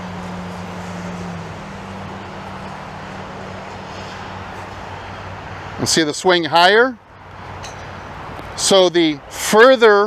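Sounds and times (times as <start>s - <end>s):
low engine hum: 0.0s - 9.4s
noisy outdoor background: 0.0s - 10.0s.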